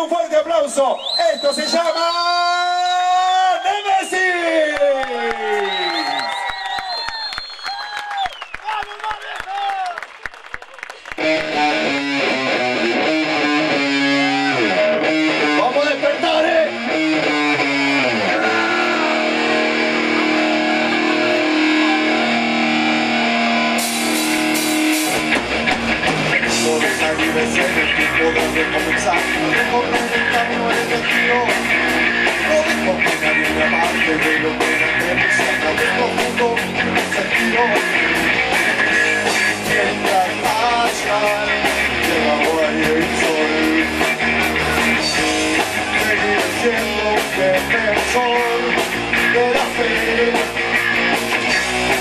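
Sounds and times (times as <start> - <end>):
drums: 11.0 - 52.0
bass guitar: 11.1 - 52.0
electric guitars playing: 11.1 - 52.0.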